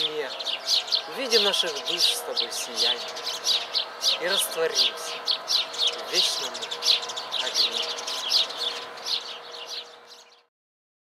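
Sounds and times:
songbirds chirping: 0:00.0 - 0:10.5.

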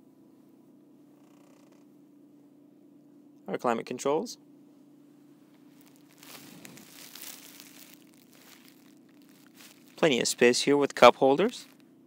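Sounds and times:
phone rustling and crinkling: 0:05.6 - 0:11.8.

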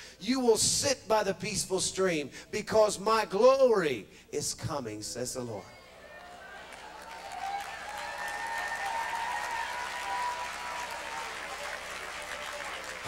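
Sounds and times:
congregation applauding and calling out: 0:06.1 - 0:13.0.

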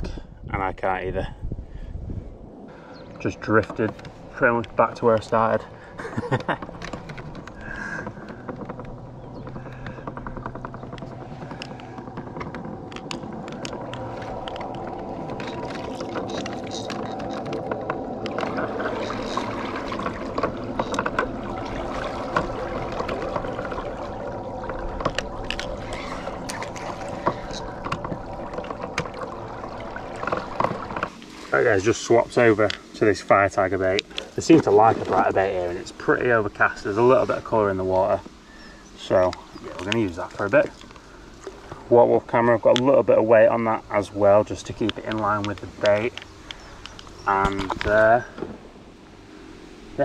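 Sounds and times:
water lapping at boat hull: 0:01.8 - 0:50.0.

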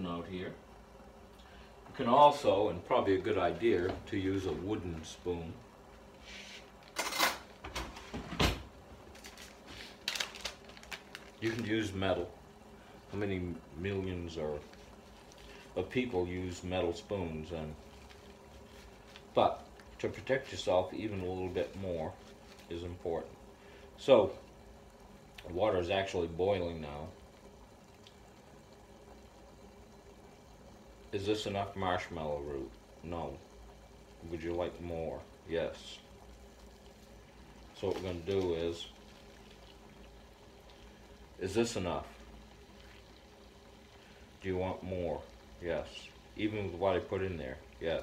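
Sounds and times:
water boiling gently: 0:00.0 - 0:48.0
plastic bag crinkling: 0:09.0 - 0:12.0.

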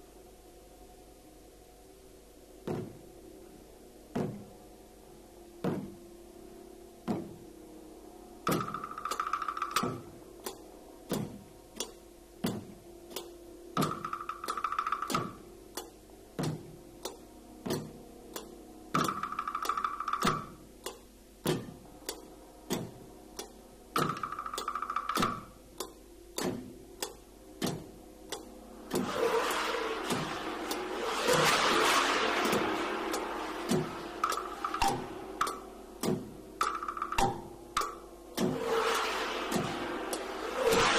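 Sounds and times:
drum and gong strokes: 0:05.6 - 0:20.8, 0:26.4 - 0:40.9
cymbals scraped together: 0:28.8 - 0:35.8, 0:38.5 - 0:40.9
rapid drum roll: 0:28.8 - 0:40.9.

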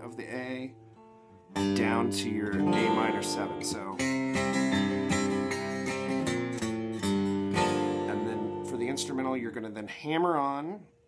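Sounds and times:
acoustic guitar strumming chords: 0:00.0 - 0:09.6.

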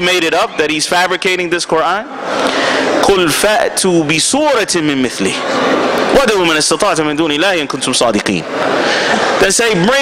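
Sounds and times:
man speaking over loudspeaker: 0:00.0 - 0:02.2, 0:03.0 - 0:08.5, 0:09.4 - 0:10.0.

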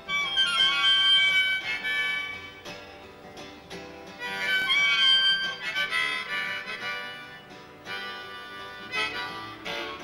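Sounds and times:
acoustic guitar strumming: 0:00.0 - 0:10.0
harmonica held notes: 0:00.0 - 0:10.0.

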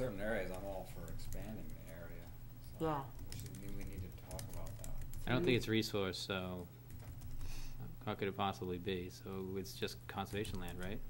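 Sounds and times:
laptop keyboard typing: 0:00.0 - 0:02.4, 0:03.0 - 0:05.8, 0:06.9 - 0:07.6, 0:10.2 - 0:11.0
steady low hum: 0:00.0 - 0:11.0.

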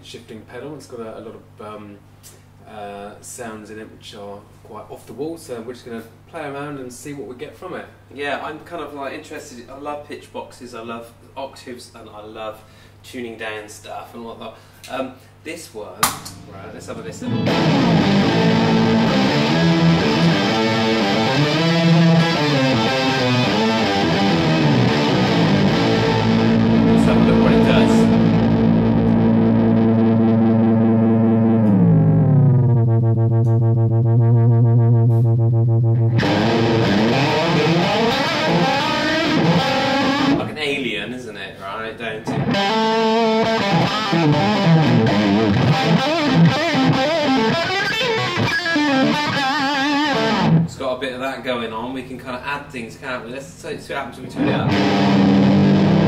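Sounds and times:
electric guitar with pitch shifter: 0:16.4 - 0:40.5, 0:42.3 - 0:50.7, 0:54.4 - 0:56.0.

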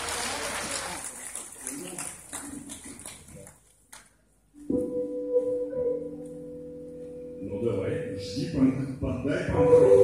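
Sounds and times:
audience applause: 0:00.0 - 0:03.6
audience voices: 0:00.0 - 0:03.8.

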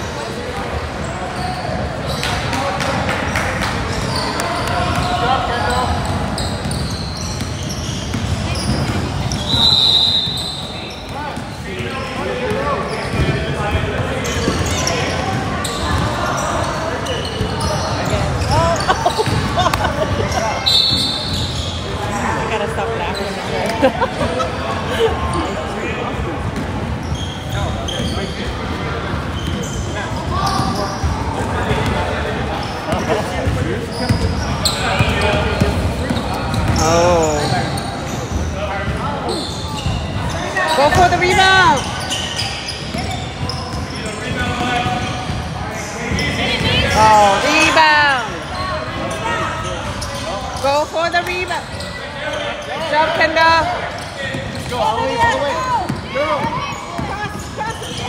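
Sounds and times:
voices calling out in gym: 0:00.0 - 0:58.0.

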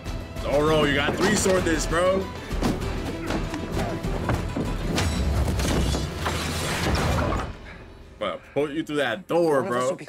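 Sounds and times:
dramatic film music: 0:00.0 - 0:09.4.

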